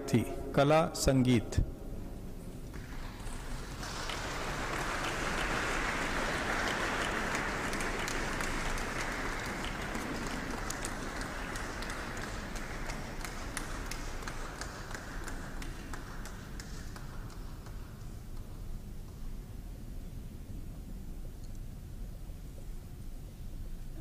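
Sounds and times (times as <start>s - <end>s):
audience applauding: 2.7s - 18.0s.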